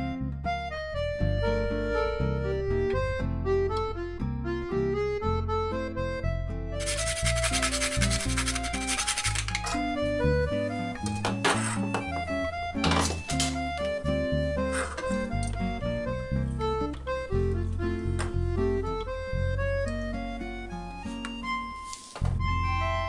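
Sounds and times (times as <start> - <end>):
background music: 0.0 - 23.0
nutmeg scraped on metal grater: 6.8 - 9.8.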